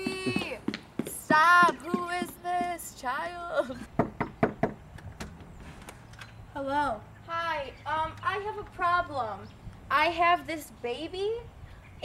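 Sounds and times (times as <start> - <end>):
woman exclaiming: 1.3 - 3.9.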